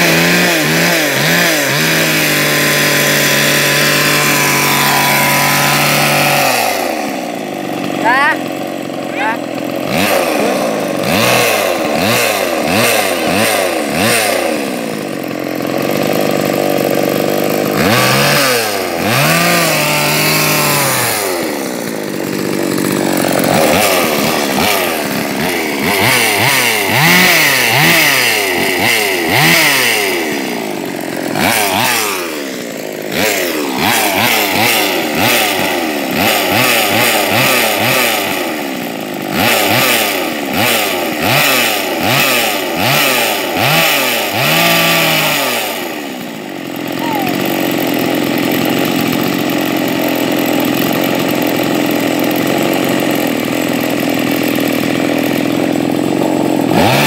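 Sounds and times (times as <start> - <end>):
chainsaw engine revving: 0.0 - 57.0.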